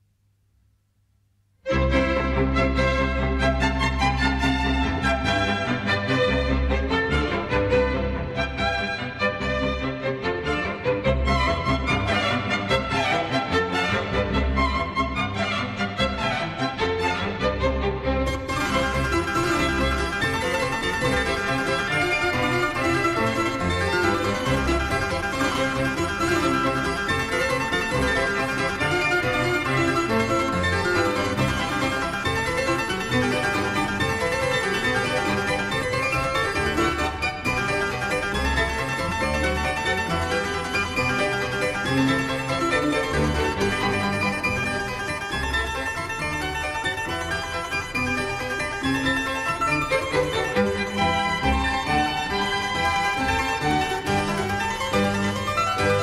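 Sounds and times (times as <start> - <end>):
harpsichord solo passage: 1.7 - 56.0.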